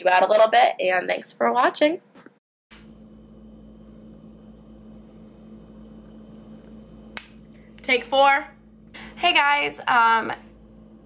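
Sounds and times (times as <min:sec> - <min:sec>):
steady low hum: 0:02.7 - 0:11.0.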